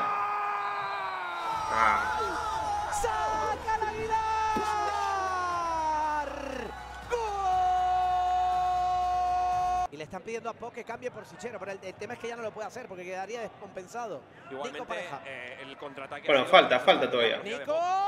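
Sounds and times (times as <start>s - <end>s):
man shouting goal: 1.5s - 9.9s.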